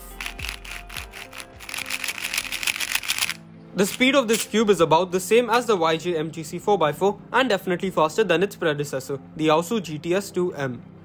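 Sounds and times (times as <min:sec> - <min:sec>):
plastic puzzle cube clicking: 0:00.2 - 0:03.4.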